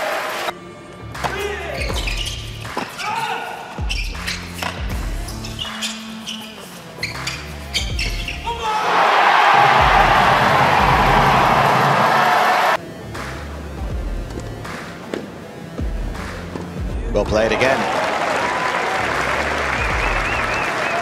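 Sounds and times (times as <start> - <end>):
crowd cheering and applauding: 0.0 - 0.5, 8.8 - 12.8, 17.4 - 21.0
background music with bass line: 0.6 - 2.8, 3.8 - 8.6, 9.6 - 12.1, 12.8 - 17.8, 19.0 - 20.8.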